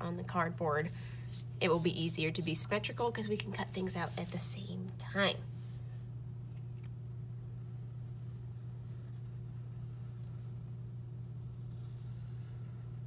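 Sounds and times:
pencil scratching on paper: 0.8 - 3.4, 7.6 - 10.6, 11.4 - 13.0.

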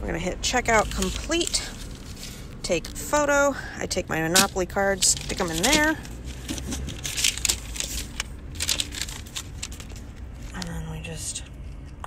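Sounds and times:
low steady rumble: 0.0 - 12.0
paper rustling and crinkling: 0.6 - 3.1, 4.3 - 10.7.

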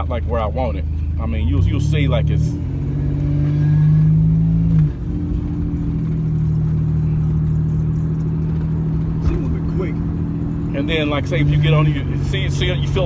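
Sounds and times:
car engine drone from cabin: 0.0 - 13.0.

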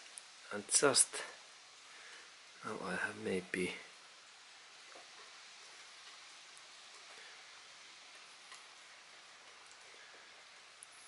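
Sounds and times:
faint hiss: 0.0 - 11.0
faint ticks: 4.8 - 11.0.

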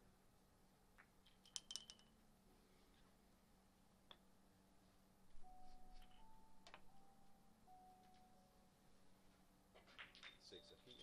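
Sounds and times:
billiard balls clicking: 0.9 - 2.2, 6.0 - 7.0, 9.7 - 11.0
balls knocking over pins: 1.0 - 2.1, 9.8 - 10.5.

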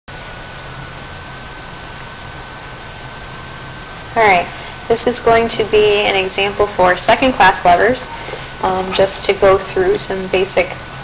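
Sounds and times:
background hiss: 0.1 - 11.0
faint high-pitched whine: 0.1 - 11.0.

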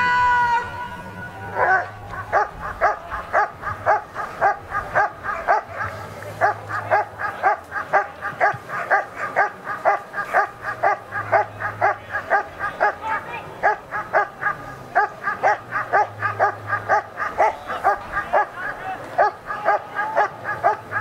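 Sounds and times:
dog barking rhythmically: 1.6 - 21.0.

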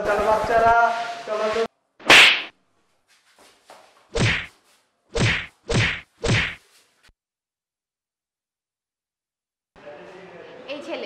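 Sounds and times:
slapping blows: 2.0 - 2.6, 4.2 - 4.6, 5.2 - 6.6.

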